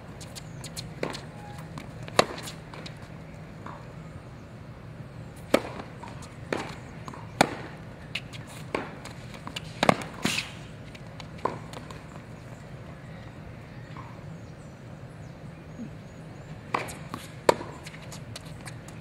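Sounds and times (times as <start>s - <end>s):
tennis balls bouncing: 0.2s - 4.0s, 5.4s - 12.9s, 16.4s - 19.0s
tennis balls struck by rackets: 0.3s - 4.0s, 5.4s - 12.4s, 16.6s - 19.0s.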